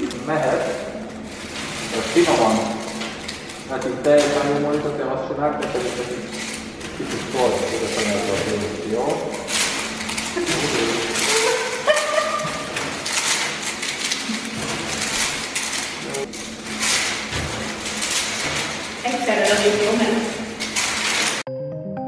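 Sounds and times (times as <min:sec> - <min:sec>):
plastic coins pattering: 0:00.0 - 0:21.4
women talking: 0:10.3 - 0:12.7, 0:19.0 - 0:20.5
women laughing: 0:10.3 - 0:13.0.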